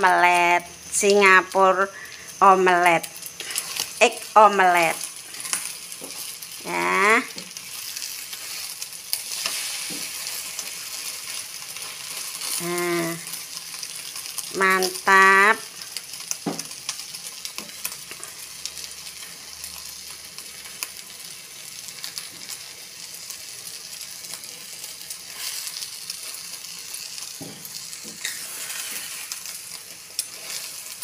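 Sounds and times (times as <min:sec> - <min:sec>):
eggs sizzling in a wok: 0:00.0 - 0:31.0
spatula scraping a pan: 0:07.6 - 0:12.6, 0:28.0 - 0:29.4.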